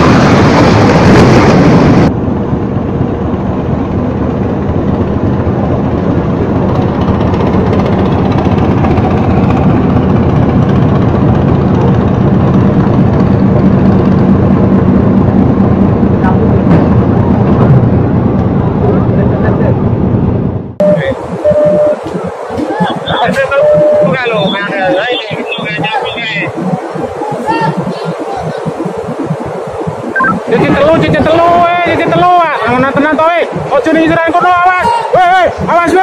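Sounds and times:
low hum: 0:00.0 - 0:34.3
boat engine running: 0:00.0 - 0:34.6
rushing noise: 0:00.0 - 0:36.0
people shouting: 0:24.9 - 0:28.8, 0:34.7 - 0:35.5.

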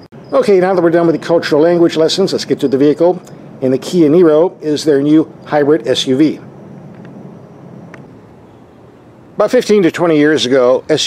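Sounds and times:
steady low background noise: 0:00.0 - 0:11.0.

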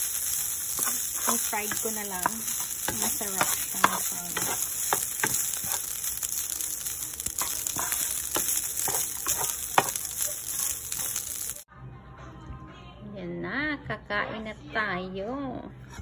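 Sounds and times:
wooden spatula scraping a pan: 0:00.0 - 0:11.6
rice sizzling in a pan: 0:00.0 - 0:11.7.

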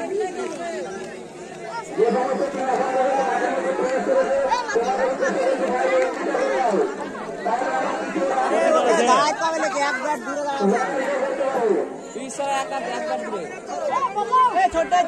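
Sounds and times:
men talking and calling out: 0:00.0 - 0:15.0.

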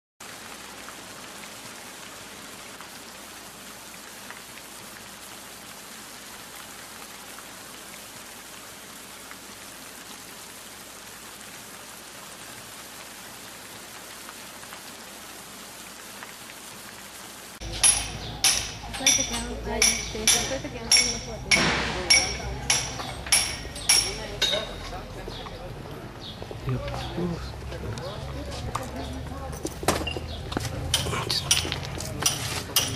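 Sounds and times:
steady hiss with crackles: 0:00.2 - 0:27.4.

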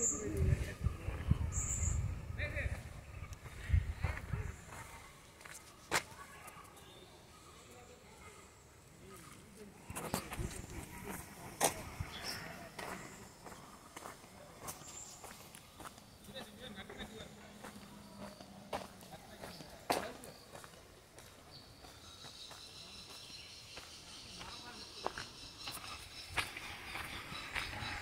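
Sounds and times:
faint voices: 0:00.0 - 0:28.0
footsteps: 0:02.7 - 0:06.7, 0:09.2 - 0:23.2, 0:23.8 - 0:28.0.

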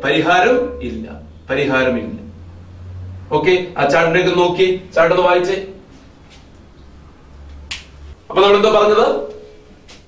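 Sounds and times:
man speaking: 0:00.0 - 0:02.3, 0:03.3 - 0:05.8.

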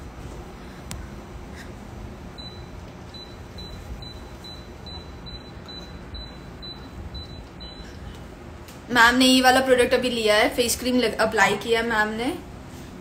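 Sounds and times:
low room noise: 0:00.0 - 0:13.0.

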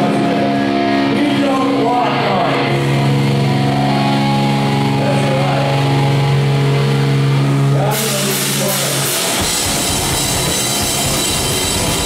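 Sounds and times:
electric guitar and bass droning: 0:00.0 - 0:12.0.

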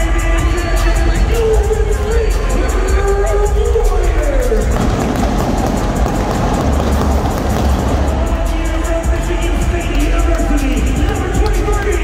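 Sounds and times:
crowd noise: 0:00.0 - 0:12.0
music with heavy bass: 0:00.0 - 0:12.0.

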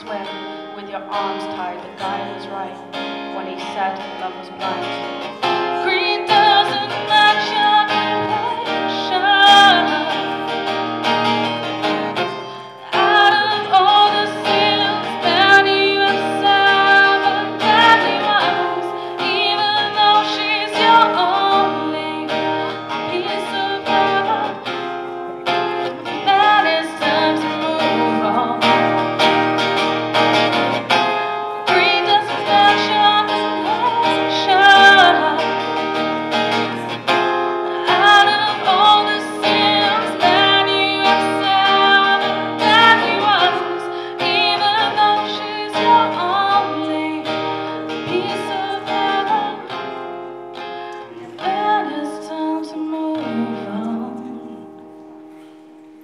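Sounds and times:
woman singing: 0:00.0 - 0:29.2, 0:30.5 - 0:50.2, 0:51.1 - 0:55.0
strummed acoustic guitar: 0:00.0 - 0:56.0.

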